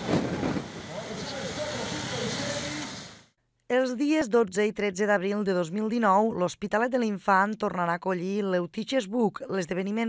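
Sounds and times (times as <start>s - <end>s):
motorcycle engines at low revs: 0.0s - 3.3s
people talking: 0.9s - 3.1s, 3.7s - 10.0s.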